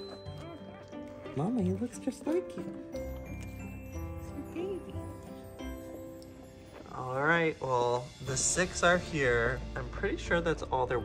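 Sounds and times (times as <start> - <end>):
soft sustained background music: 0.0 - 11.0.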